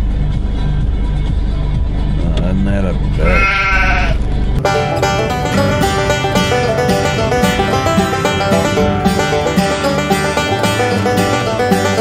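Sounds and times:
background music with bass line: 0.0 - 12.0
sheep bleating: 3.2 - 4.2.

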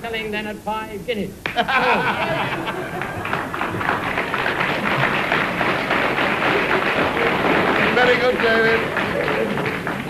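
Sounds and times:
audience laughing: 1.5 - 5.7
audience applauding: 1.9 - 10.0.

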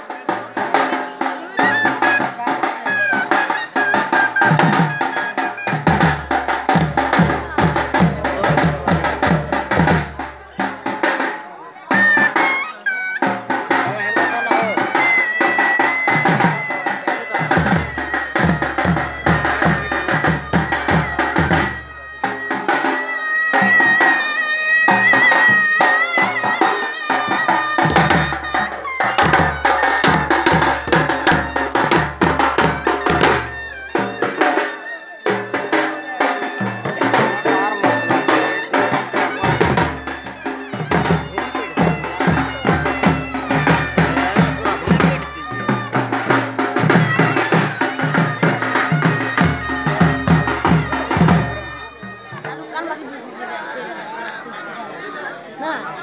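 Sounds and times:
drums beaten fast: 0.0 - 52.6
deeper drum beat: 0.2 - 11.2, 13.2 - 22.8, 26.2 - 34.6, 35.3 - 52.4
high wavering melody: 17.4 - 52.2.

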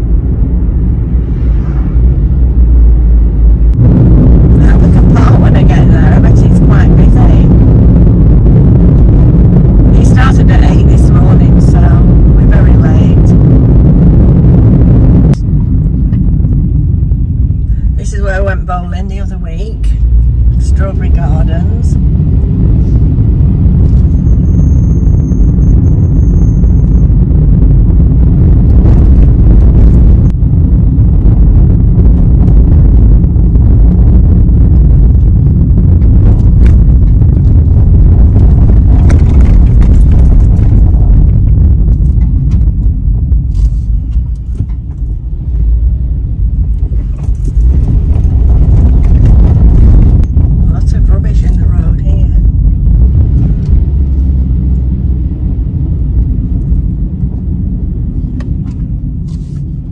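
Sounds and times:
car interior road rumble: 0.0 - 59.9.

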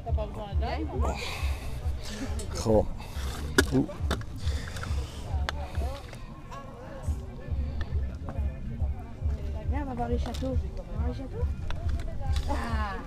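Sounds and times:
low fluttering rumble: 0.0 - 13.0.

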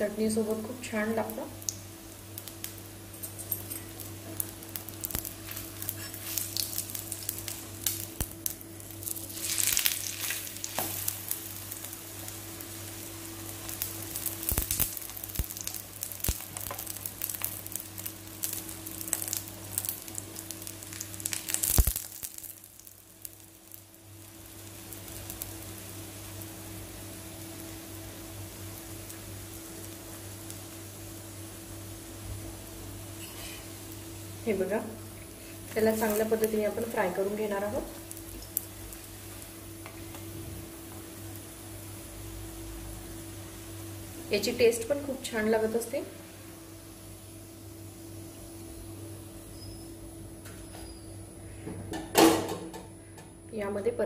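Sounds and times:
flatbread sizzling in oil: 0.0 - 53.2.

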